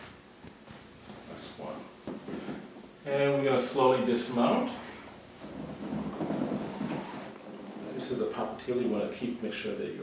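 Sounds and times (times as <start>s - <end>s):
person shifting on massage table: 2.0s - 2.9s, 5.0s - 8.4s.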